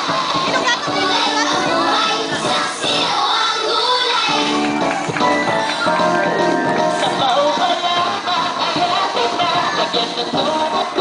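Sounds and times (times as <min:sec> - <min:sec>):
music: 0:00.0 - 0:11.0.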